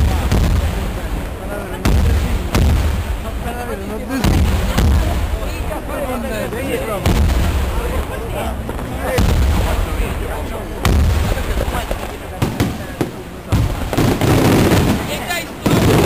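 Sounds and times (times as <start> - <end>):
crackling firework bursts: 0.0 - 6.3, 6.9 - 16.0
firework bangs with low rumble: 0.0 - 16.0.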